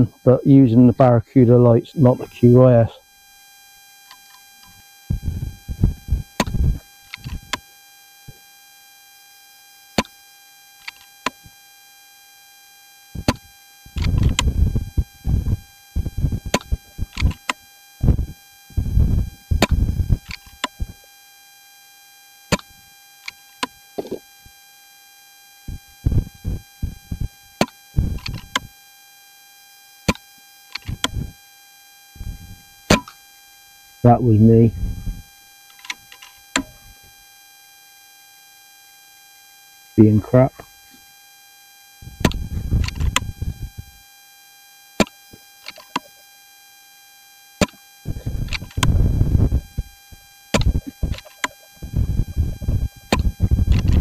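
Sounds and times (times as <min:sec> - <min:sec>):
electronic whine: 0:00.0 - 0:54.0
wind buffeting microphone: 0:05.1 - 0:06.8, 0:14.0 - 0:17.3, 0:18.0 - 0:20.3, 0:34.7 - 0:35.2, 0:42.0 - 0:43.8, 0:48.1 - 0:49.9, 0:51.8 - 0:54.0
sharp clicks: 0:50.6 - 0:54.0.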